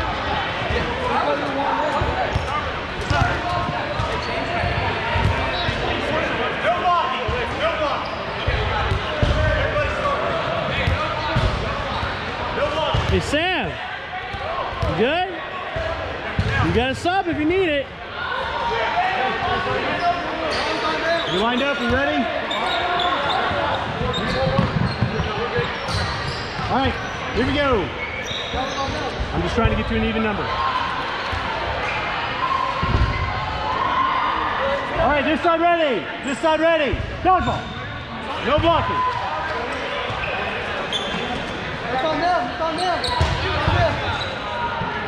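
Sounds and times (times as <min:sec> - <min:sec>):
echoing chatter of voices: 0:00.0 - 0:45.0
balls bouncing on hardwood floor: 0:24.0 - 0:25.2.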